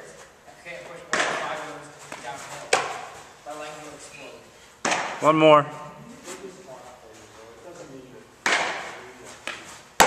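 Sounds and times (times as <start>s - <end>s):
baseball smacks: 1.1s - 1.5s, 2.1s - 3.1s, 4.8s - 5.2s, 8.4s - 10.0s.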